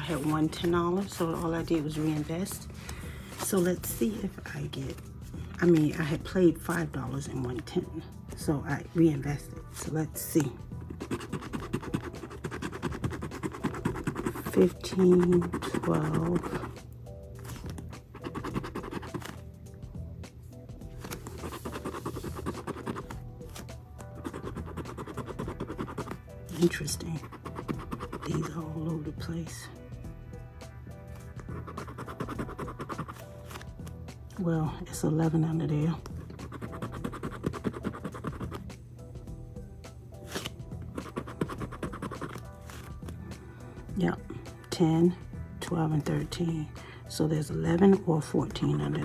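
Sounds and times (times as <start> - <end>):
scraper rubbing scratch-off ticket: 0.0 - 2.6, 10.8 - 16.8, 17.4 - 19.4, 21.0 - 28.8, 31.5 - 34.0, 36.0 - 38.7, 40.2 - 43.2
background music: 0.0 - 49.0.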